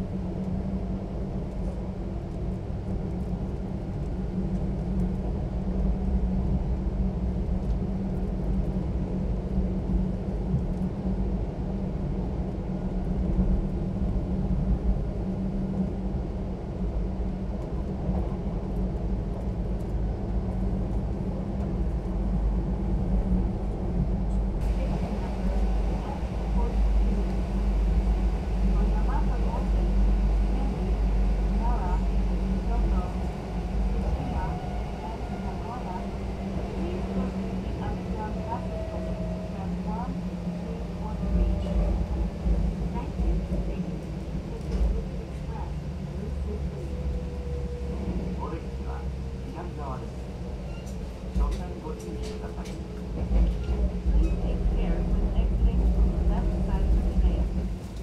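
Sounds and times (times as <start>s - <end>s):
electric train rumbling: 0.0s - 58.0s.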